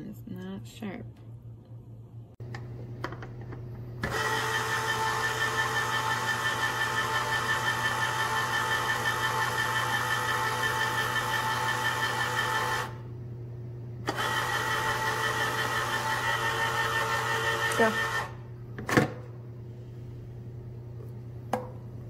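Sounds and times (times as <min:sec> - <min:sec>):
electric can opener whining: 0:02.4 - 0:13.1, 0:14.0 - 0:18.5.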